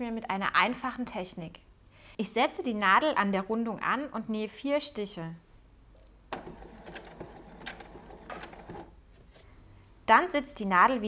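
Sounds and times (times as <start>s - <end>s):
sewing machine stitching: 6.3s - 9.0s.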